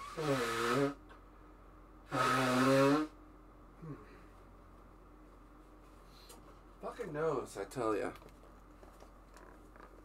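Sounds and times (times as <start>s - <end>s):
man groaning: 3.8s - 4.1s.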